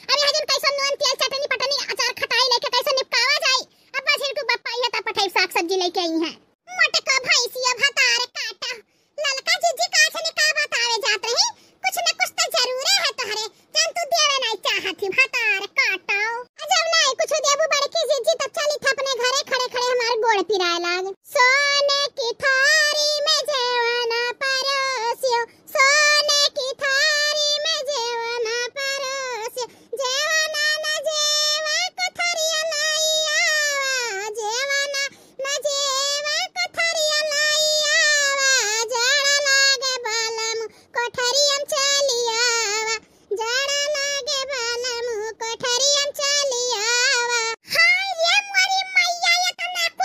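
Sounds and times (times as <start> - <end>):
high-pitched cartoon voice talking: 0.1 - 29.4, 30.0 - 50.0.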